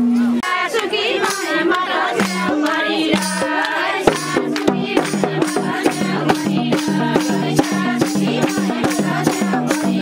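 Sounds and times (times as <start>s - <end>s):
sharp percussive beats: 0.0s - 10.0s
women singing folk song: 0.3s - 10.0s.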